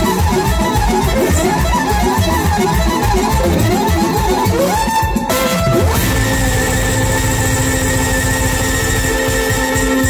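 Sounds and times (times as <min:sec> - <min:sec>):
live band holding a chord: 0:00.0 - 0:10.0.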